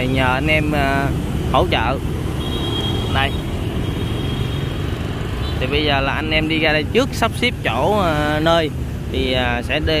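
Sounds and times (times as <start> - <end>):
cars passing: 0.0 - 10.0
city road traffic rumble: 0.0 - 10.0
motorbikes passing: 0.0 - 10.0.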